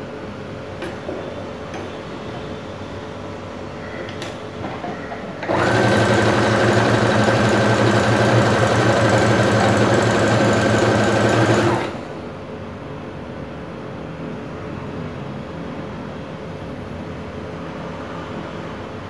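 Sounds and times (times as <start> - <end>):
electric sewing machine running: 5.4 - 12.1.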